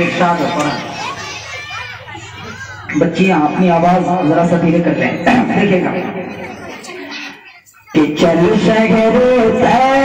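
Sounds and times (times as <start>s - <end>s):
man speaking: 0.0s - 0.9s, 2.9s - 6.3s, 7.9s - 10.0s
young girls chattering: 0.0s - 8.9s.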